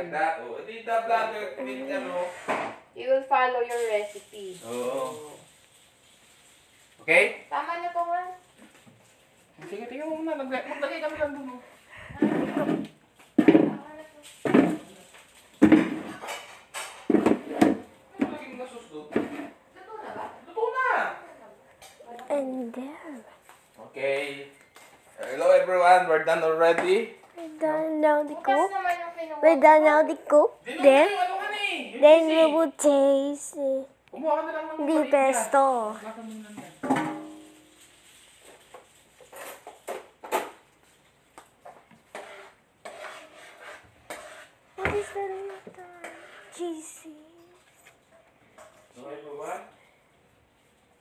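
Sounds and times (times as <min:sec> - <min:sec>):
metal frying pan clang: 0:36.8 - 0:37.7.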